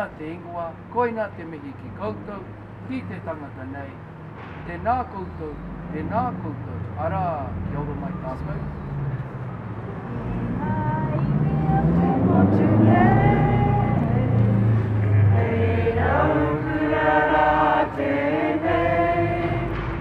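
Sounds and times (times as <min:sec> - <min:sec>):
low traffic hum: 0:00.0 - 0:20.0
group of voices singing: 0:10.3 - 0:20.0.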